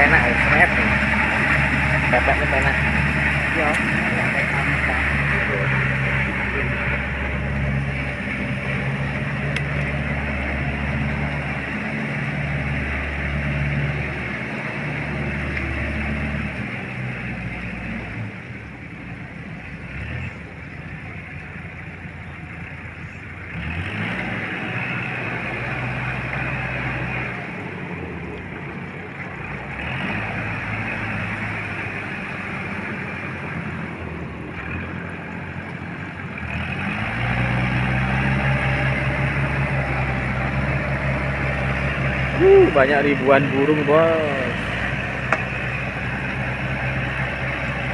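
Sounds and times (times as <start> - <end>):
tractor diesel engine under load: 0.0 - 47.9.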